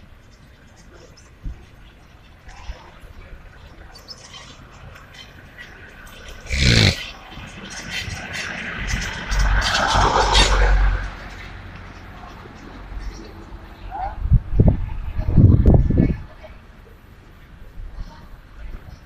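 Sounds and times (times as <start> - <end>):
voices: 0.0 - 19.0
car passing close by: 7.9 - 11.8.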